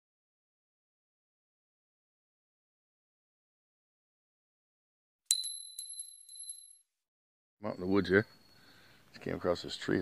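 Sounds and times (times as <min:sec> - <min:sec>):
coin bouncing clicks: 0:05.3 - 0:06.8
coin striking hard surface: 0:05.3 - 0:06.8.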